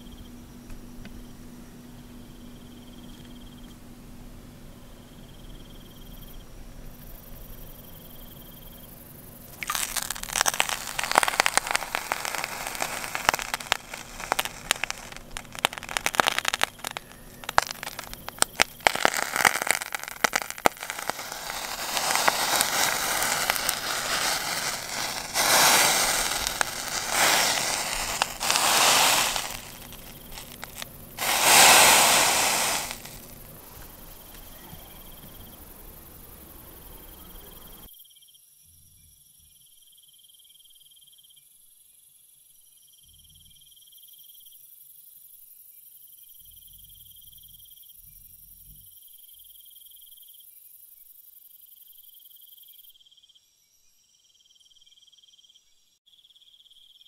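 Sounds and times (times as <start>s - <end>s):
crickets chirping: 1.2s - 3.8s, 4.8s - 38.4s
loud crackling rustling bursts: 9.6s - 33.6s.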